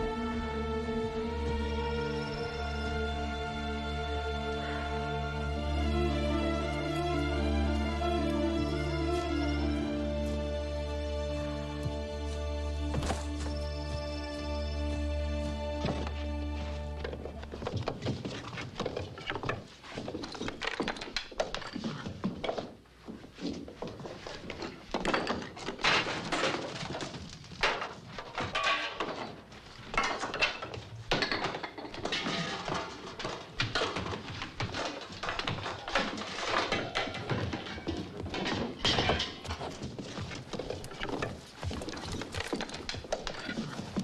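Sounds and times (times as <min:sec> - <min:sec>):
film soundtrack music: 0:00.0 - 0:17.6
irregular thuds and knocks: 0:12.8 - 0:15.1, 0:15.7 - 0:44.0.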